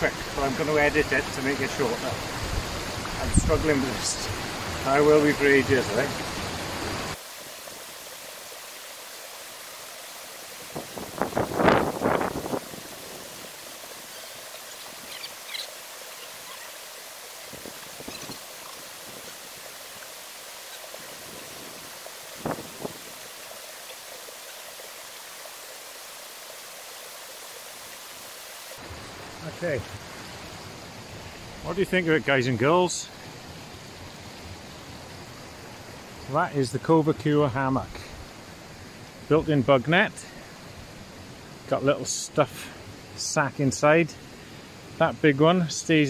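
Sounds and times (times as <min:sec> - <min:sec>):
hissing outdoor background noise: 0:00.0 - 0:46.0.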